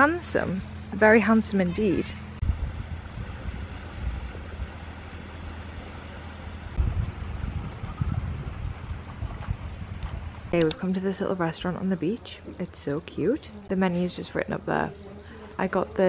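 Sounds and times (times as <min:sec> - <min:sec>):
wind buffeting microphone: 0:02.4 - 0:04.8, 0:06.7 - 0:10.6.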